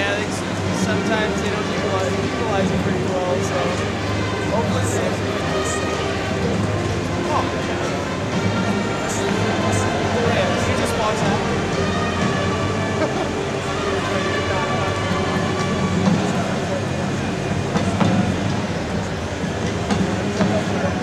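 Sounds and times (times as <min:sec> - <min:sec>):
indistinct voices: 0:00.0 - 0:21.0.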